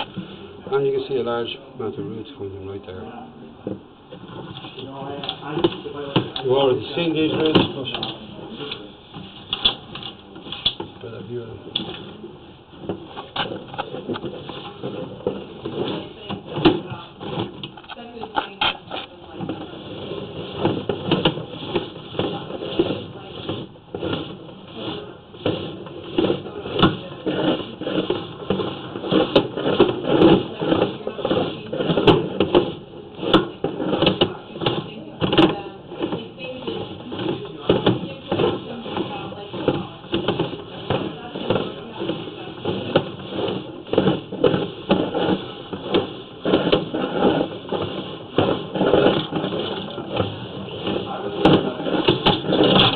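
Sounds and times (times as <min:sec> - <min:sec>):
muffled indistinct talking: 0:00.0 - 0:12.6, 0:28.8 - 0:52.9.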